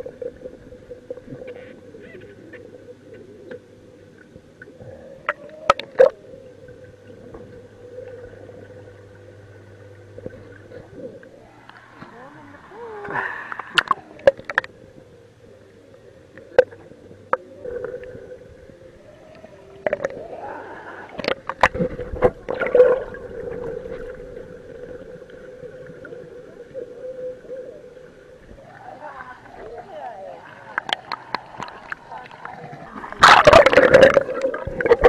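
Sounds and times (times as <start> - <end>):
low underwater hum: 0.0 - 35.0
pool water splashing: 16.5 - 35.0.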